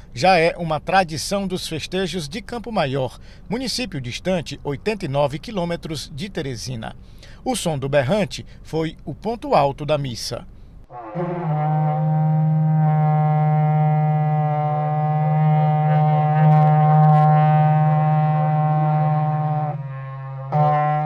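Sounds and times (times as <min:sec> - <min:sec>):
ox-horn trumpet long low note: 0:10.9 - 0:21.0.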